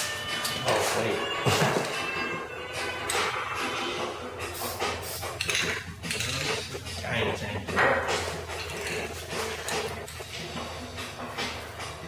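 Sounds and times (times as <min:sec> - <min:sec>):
spray paint can hissing: 0:04.5 - 0:06.7
cans and plastic caps clinking: 0:05.4 - 0:06.7, 0:07.8 - 0:10.2.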